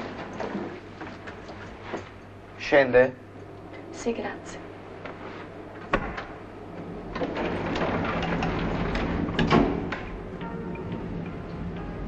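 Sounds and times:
lift car mechanical running noise: 0.0s - 12.0s
soft music: 10.2s - 12.0s.

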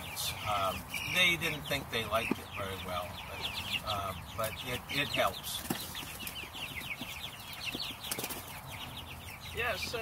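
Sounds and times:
chicks peeping: 0.0s - 10.0s.

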